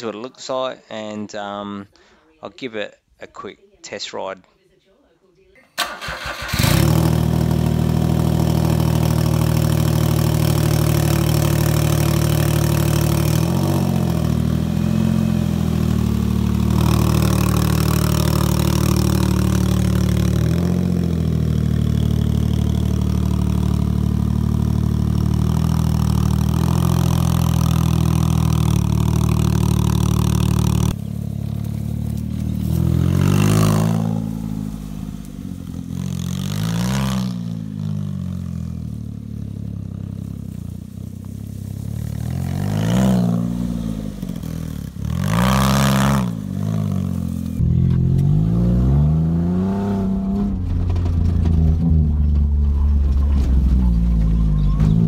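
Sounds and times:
small car engine starting and idling: 5.6 - 55.0
car driving off under throttle: 5.8 - 55.0.

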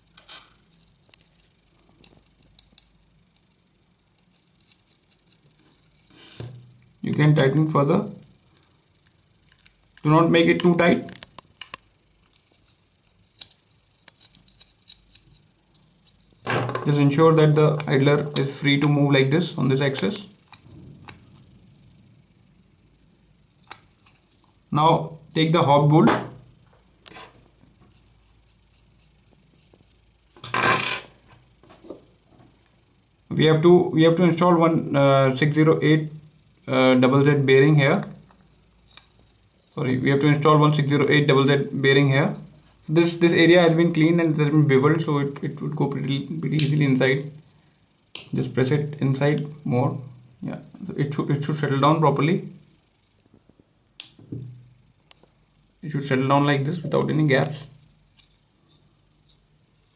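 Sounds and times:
man speaking: 55.8 - 57.7.

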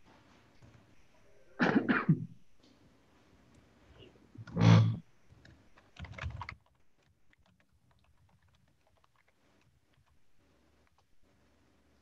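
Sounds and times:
faint laptop keyboard tapping: 5.3 - 11.4.

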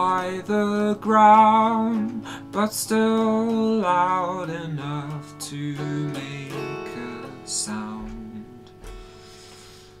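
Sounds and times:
electric guitar chords ringing: 0.0 - 10.0.

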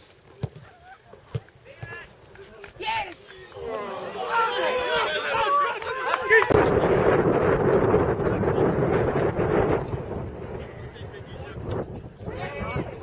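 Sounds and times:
wind buffeting microphone: 6.4 - 13.0.

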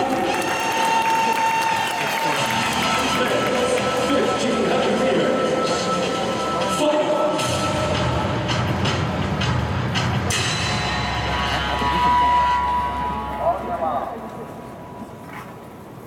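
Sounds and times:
crowd noise: 0.0 - 16.0
public address sound: 2.8 - 8.0, 13.2 - 15.4.

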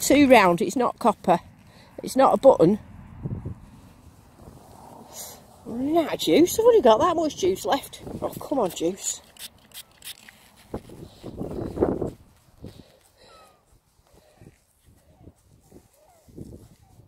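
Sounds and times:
rubbing and clicks on leather glove: 8.1 - 17.0
spray bottle sputtering: 9.1 - 10.8.

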